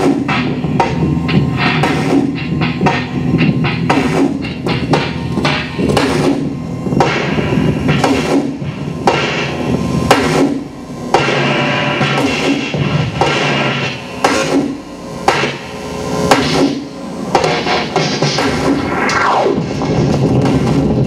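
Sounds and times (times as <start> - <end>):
hammer-like hits and clatter: 0.0 - 15.7, 16.3 - 21.0
steady low drone: 0.0 - 21.0.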